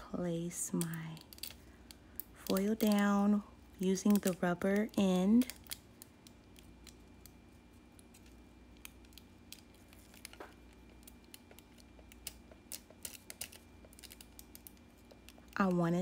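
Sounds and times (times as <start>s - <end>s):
faint steady hum: 0.0s - 16.0s
nail tools clicking and tapping: 0.7s - 7.4s, 8.0s - 15.6s.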